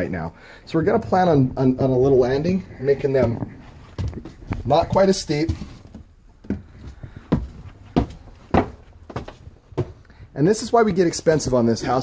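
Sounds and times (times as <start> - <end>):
footsteps climbing stairs: 0.8 - 12.0.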